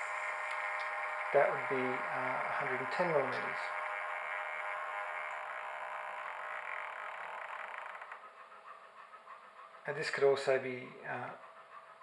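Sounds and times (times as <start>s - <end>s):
servo whirring: 0.0s - 8.6s.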